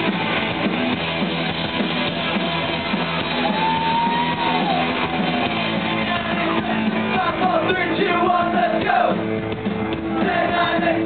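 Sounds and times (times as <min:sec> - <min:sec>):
live pop-punk band: 0:00.0 - 0:11.0.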